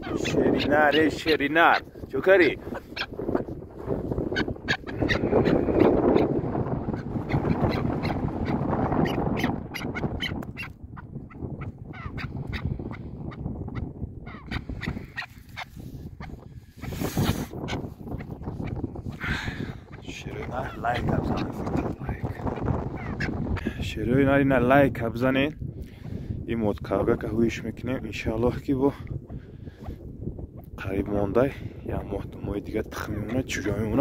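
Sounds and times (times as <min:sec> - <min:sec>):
partridges giving harsh calls: 0:00.0 - 0:03.6, 0:04.3 - 0:10.7.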